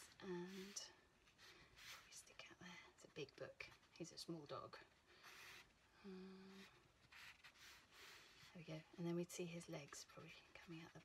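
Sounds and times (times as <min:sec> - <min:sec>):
faint soft hiss: 0:00.0 - 0:11.0.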